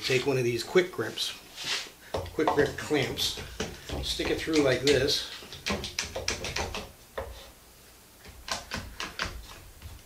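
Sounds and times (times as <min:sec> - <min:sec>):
wooden board clicking and knocking: 0:02.2 - 0:07.3, 0:08.2 - 0:10.0.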